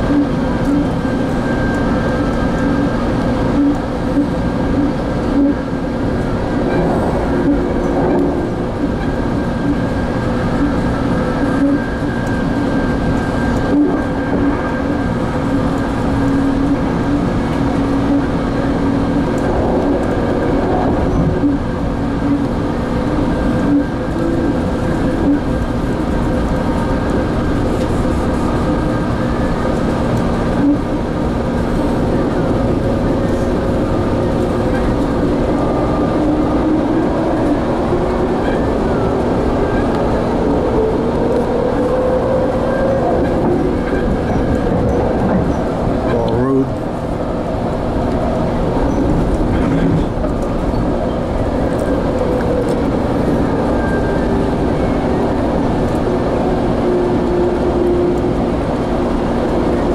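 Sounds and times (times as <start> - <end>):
constant hum: 0.0 - 59.9
train running at speed: 0.0 - 59.9.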